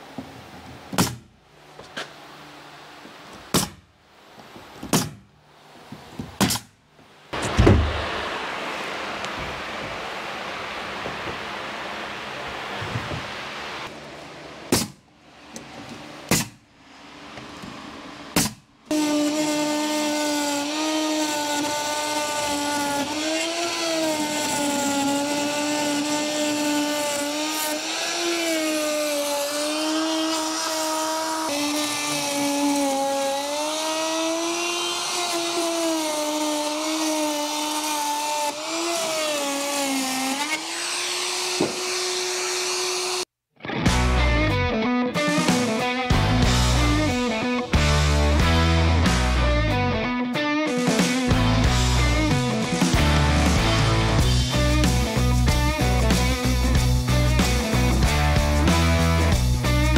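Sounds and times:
sharp knocks: 7.4 - 8.0
orbital sander on plywood: 18.9 - 43.3, 51.0 - 59.9.

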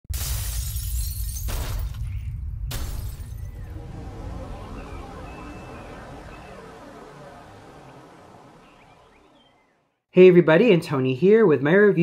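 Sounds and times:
deep rumble: 1.8 - 9.7
sudden crashing hits: 2.6 - 7.0.

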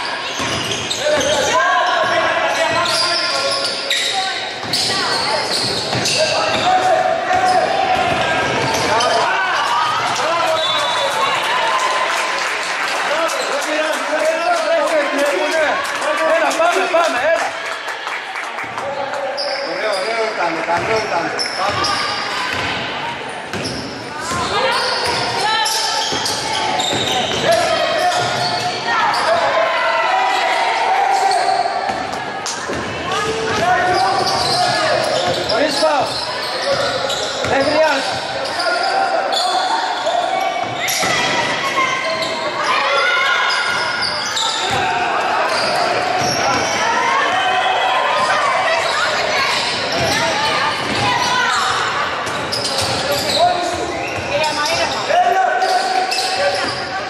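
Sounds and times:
voices calling and talking: 0.0 - 57.0.

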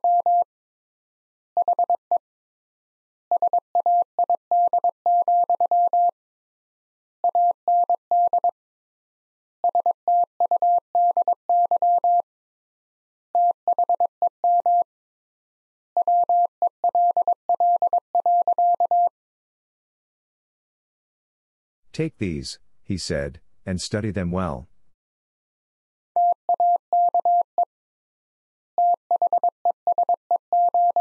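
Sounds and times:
morse code beeps: 26.2 - 27.5, 28.8 - 31.0.

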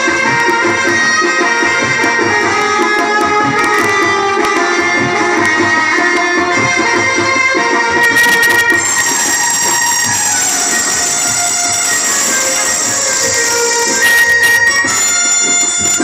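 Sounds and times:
harmonium sustained chords: 0.0 - 16.0.

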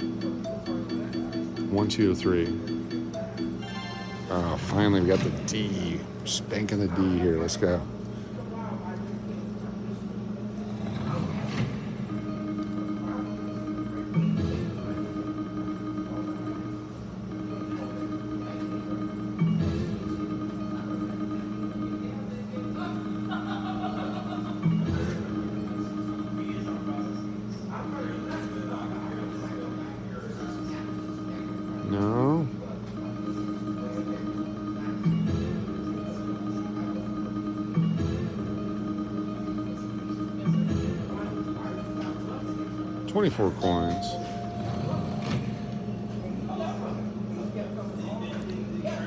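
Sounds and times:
chiming electronic tones: 0.0 - 5.0, 43.4 - 46.3
steady electronic drone: 0.0 - 8.5, 9.2 - 49.0.

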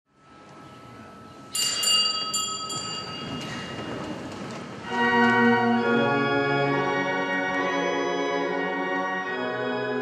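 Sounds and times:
small bells ringing: 1.5 - 4.3.

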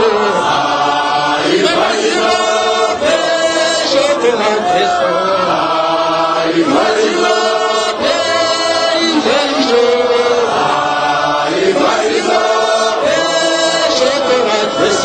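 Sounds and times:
group chanting a hymn: 0.0 - 15.0.

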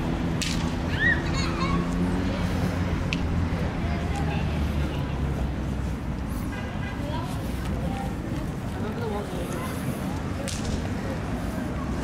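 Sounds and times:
low street rumble: 0.0 - 12.0
faint distant voices: 1.6 - 12.0.

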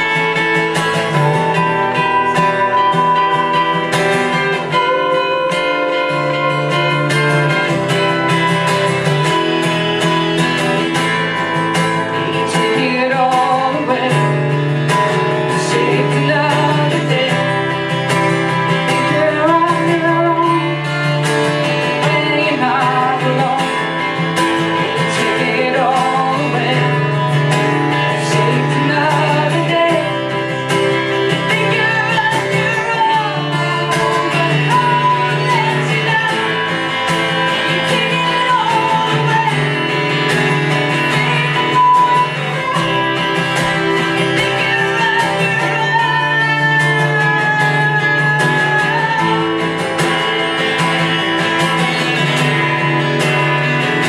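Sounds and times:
acoustic guitars strummed: 0.0 - 54.0
woman singing: 0.0 - 54.0.

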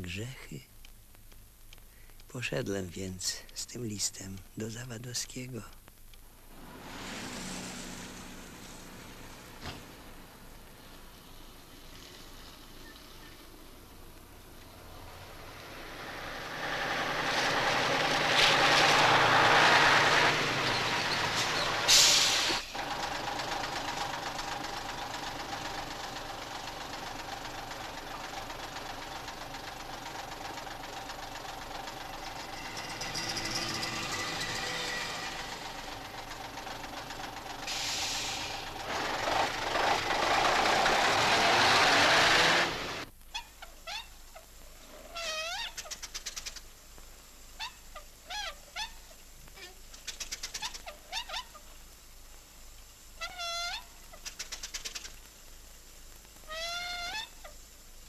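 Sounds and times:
steady mechanical noise: 17.4 - 43.1.

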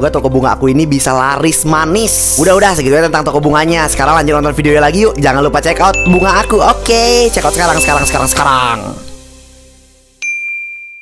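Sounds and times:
background music: 0.0 - 11.0
bright ding: 10.2 - 11.0.

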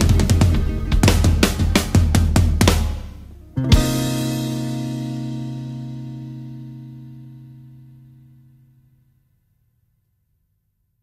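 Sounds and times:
band final chord ringing out: 0.0 - 8.7.

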